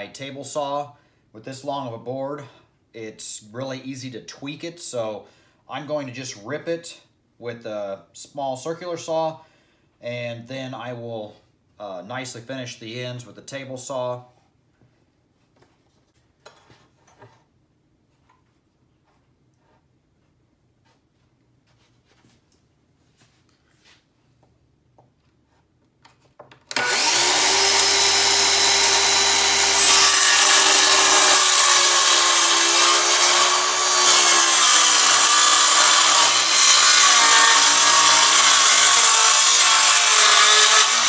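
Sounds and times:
circular saw cutting wood: 0:26.7 - 0:41.0.

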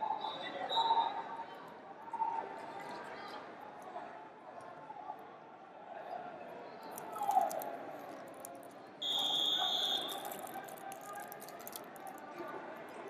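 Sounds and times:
referee's whistle: 0:00.1 - 0:01.2, 0:09.0 - 0:10.4.

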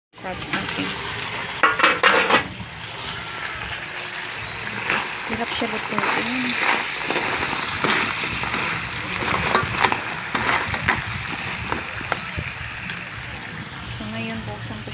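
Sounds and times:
crabs sizzling in a wok: 0:00.2 - 0:14.9.

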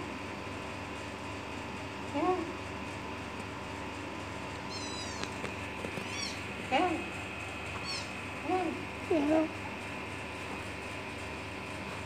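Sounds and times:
kitten meowing: 0:04.7 - 0:05.4, 0:06.0 - 0:06.4, 0:07.8 - 0:08.1.

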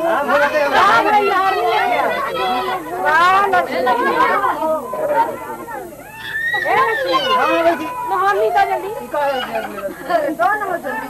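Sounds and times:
overlapping chatter: 0:00.0 - 0:11.0.

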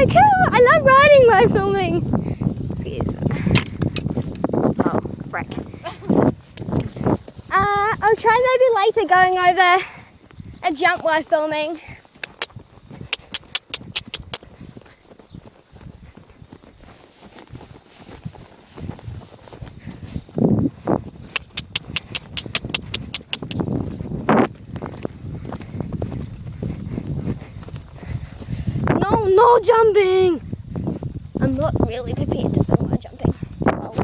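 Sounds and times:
low rumbling microphone noise: 0:00.0 - 0:12.0, 0:17.5 - 0:34.0
horse hoofbeats on grass: 0:00.0 - 0:34.0
quick even clicks: 0:12.2 - 0:14.5, 0:21.3 - 0:23.7.

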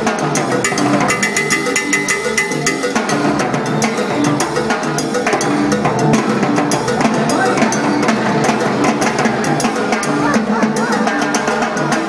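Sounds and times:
latin jazz band playing: 0:00.0 - 0:12.0.

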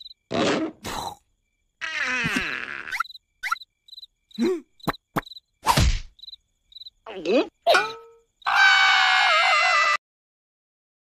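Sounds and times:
crickets chirping: 0:00.0 - 0:09.8
loud cartoon thud: 0:05.6 - 0:06.1.

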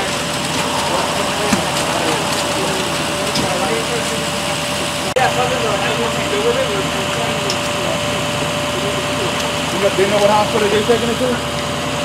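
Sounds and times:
faint voices talking: 0:00.0 - 0:11.5
constant hum: 0:00.0 - 0:11.8
vehicle engines idling: 0:00.0 - 0:12.0.

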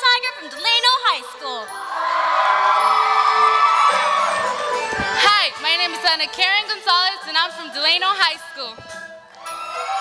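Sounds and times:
background music: 0:00.0 - 0:10.0
crowd cheering and shouting: 0:01.6 - 0:10.0.

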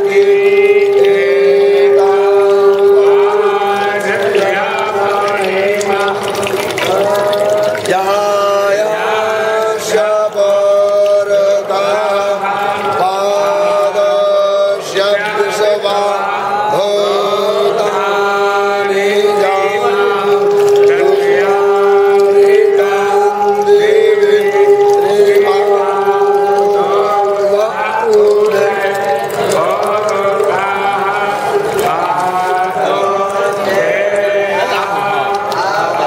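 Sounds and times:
voices chanting mantras: 0:00.0 - 0:36.0.

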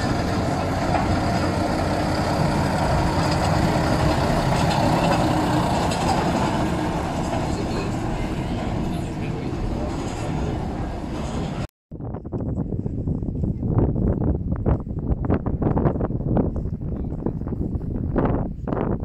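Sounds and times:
diesel locomotive running: 0:00.0 - 0:11.7.

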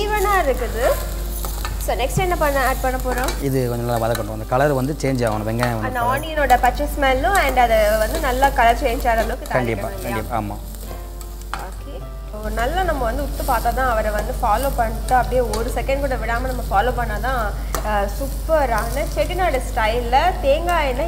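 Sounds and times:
onion frying in oil sizzling: 0:00.0 - 0:21.0.

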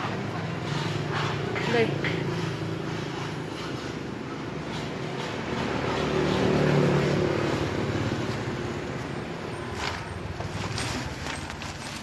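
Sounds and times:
vehicle engine passing: 0:00.0 - 0:11.8.

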